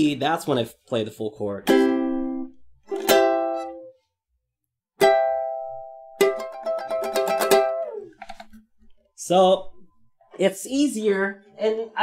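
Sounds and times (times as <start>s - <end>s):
ukulele strumming: 1.6s - 4.0s, 5.0s - 8.7s.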